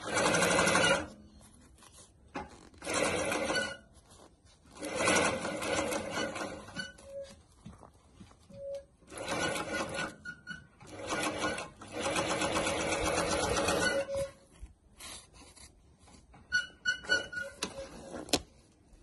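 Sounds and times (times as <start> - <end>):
sewing machine stitching: 0.0 - 1.2, 2.4 - 3.9, 4.8 - 7.2, 9.0 - 14.4.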